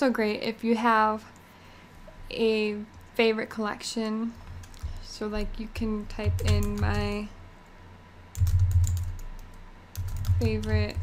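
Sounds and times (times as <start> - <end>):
computer keyboard typing: 6.1 - 7.3, 8.3 - 11.0.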